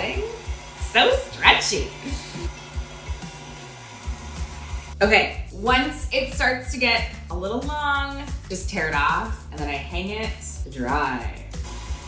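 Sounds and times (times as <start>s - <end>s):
stand mixer motor running: 0.0s - 5.0s, 11.6s - 12.0s
background music with steady beat: 0.0s - 12.0s.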